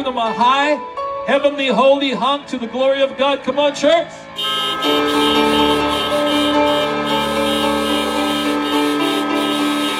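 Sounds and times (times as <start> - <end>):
many car horns blaring: 4.4 - 9.9.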